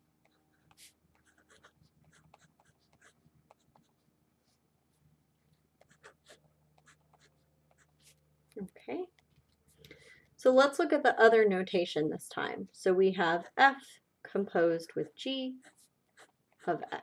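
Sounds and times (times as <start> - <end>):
marker writing on paper: 0.2 - 4.6, 5.8 - 8.2, 15.6 - 17.0.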